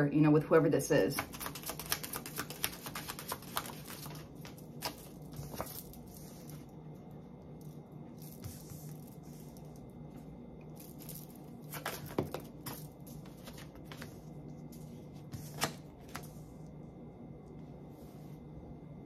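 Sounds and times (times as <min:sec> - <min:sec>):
low steady hum: 0:00.0 - 0:19.0
cards rustling: 0:01.2 - 0:06.7, 0:10.8 - 0:16.5.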